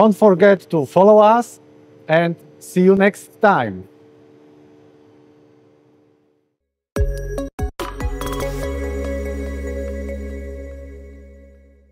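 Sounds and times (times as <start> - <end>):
workshop machinery hum: 0.0 - 6.5.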